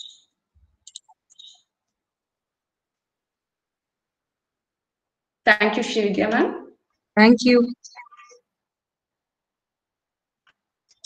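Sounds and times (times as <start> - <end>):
sharp high-pitched clicks: 0.0 - 1.7.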